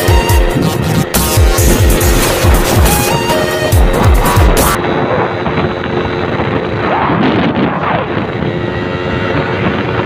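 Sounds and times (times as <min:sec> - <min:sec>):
wind and road noise: 0:00.0 - 0:10.0
music with deep bass drum hits: 0:00.1 - 0:04.8.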